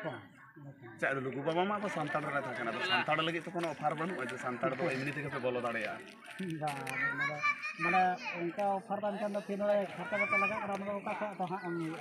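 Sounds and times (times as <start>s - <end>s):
people talking: 0.0s - 12.0s
man talking: 7.8s - 12.0s.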